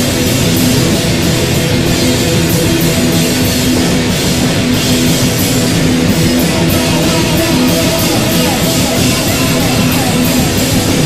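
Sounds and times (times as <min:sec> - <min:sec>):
drums: 0:00.0 - 0:11.0
heavy rock band playing live: 0:00.0 - 0:11.0.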